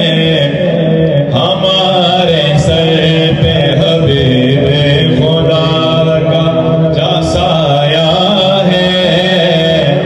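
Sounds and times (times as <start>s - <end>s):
man chanting over loudspeaker: 0.0s - 10.0s.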